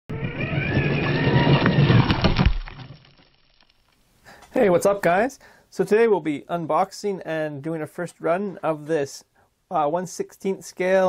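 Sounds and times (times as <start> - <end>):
electric motor whining: 0.1 - 2.8
tyres crunching on gravel: 0.4 - 3.8
stones clicking: 0.8 - 4.0.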